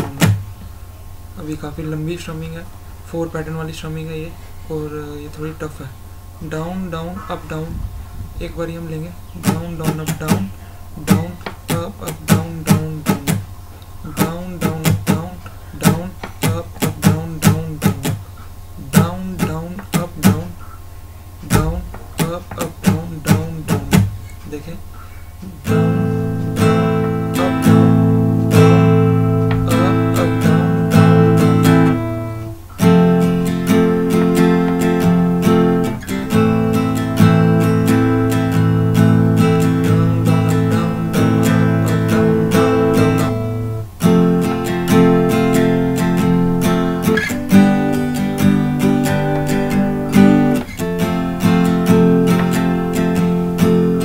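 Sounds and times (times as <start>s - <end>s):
acoustic guitar strumming: 0.0s - 54.0s.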